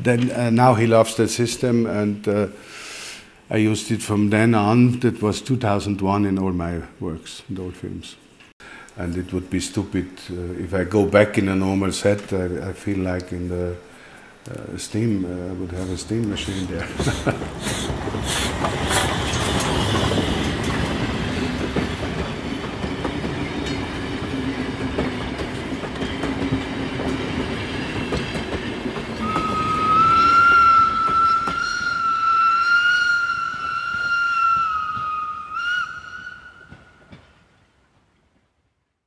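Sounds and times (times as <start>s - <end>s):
steam train running: 14.6s - 37.4s
steam train whistle: 29.2s - 37.0s.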